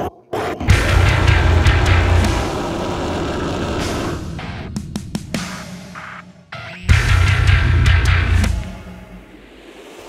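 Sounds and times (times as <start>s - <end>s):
heavy deathcore music: 0.6s - 10.0s
distorted bass guitar chugging: 0.7s - 4.8s, 6.9s - 9.2s.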